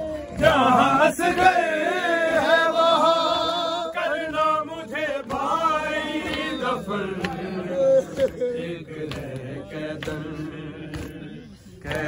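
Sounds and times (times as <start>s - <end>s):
men chanting a lament: 0.0s - 12.0s.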